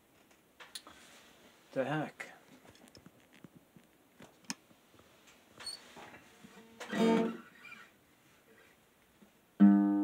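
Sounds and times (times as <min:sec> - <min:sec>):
high squeak: 0:06.8 - 0:07.9.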